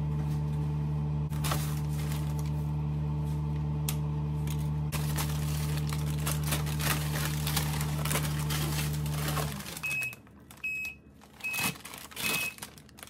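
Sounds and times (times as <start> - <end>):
appliance hum: 0.0 - 13.0
plastic bags crinkling: 1.3 - 2.6, 4.5 - 13.0.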